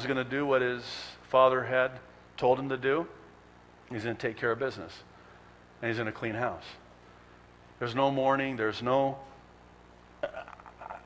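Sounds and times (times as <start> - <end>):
stifled chuckle: 10.2 - 11.0.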